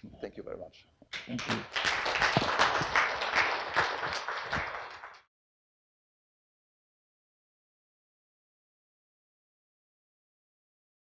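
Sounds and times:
audience applauding: 1.2s - 5.3s.

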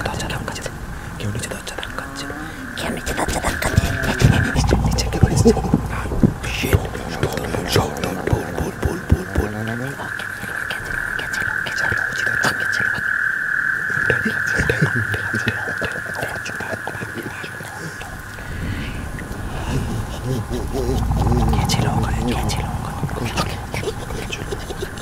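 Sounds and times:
high-pitched hum: 0.0s - 13.0s.

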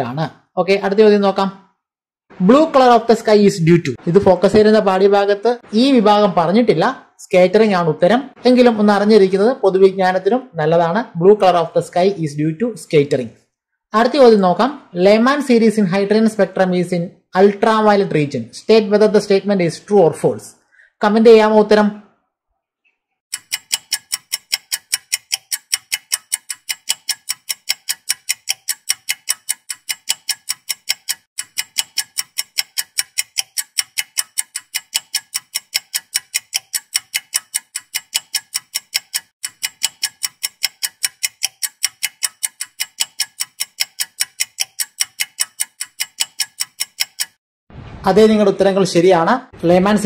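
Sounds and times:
clock ticking: 23.3s - 47.4s.

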